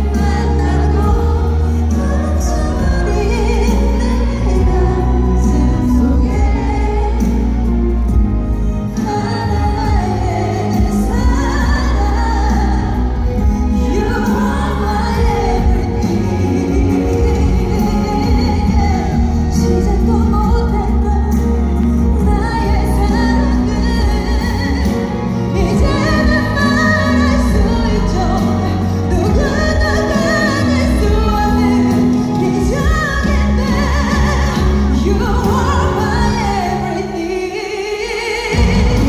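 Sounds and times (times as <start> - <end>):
live band: 0.0 - 39.0
woman singing power ballad live: 0.0 - 39.0.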